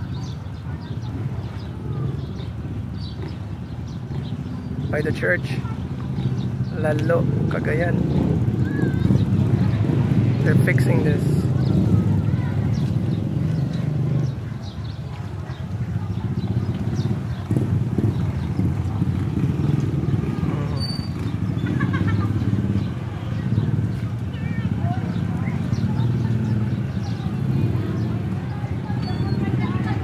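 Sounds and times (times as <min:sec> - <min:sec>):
people's voices: 0:00.0 - 0:30.0.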